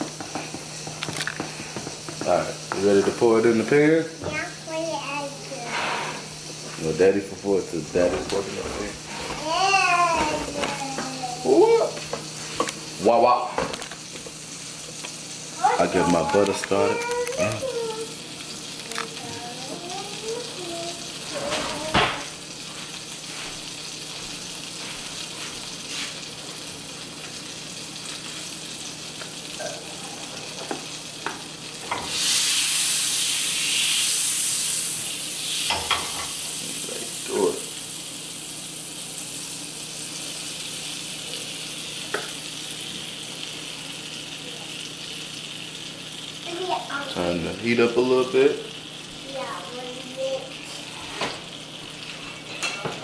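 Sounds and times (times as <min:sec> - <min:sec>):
batter sizzling in a pan: 0:00.0 - 0:53.0
butter sizzling in a skillet: 0:00.0 - 0:53.0.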